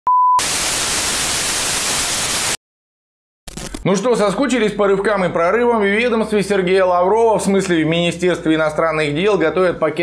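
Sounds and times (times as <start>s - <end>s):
tv static hiss: 0.4s - 2.6s.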